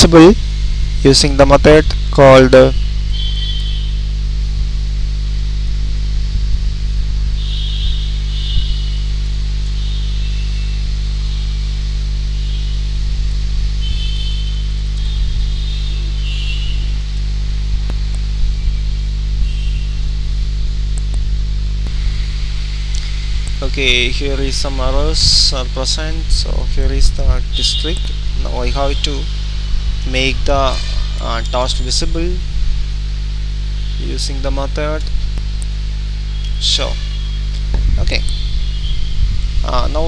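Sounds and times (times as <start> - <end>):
low electrical hum: 0.0 - 40.0.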